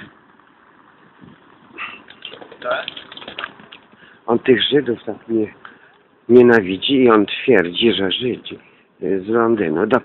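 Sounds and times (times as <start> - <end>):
faint street background noise: 0.0 - 10.0.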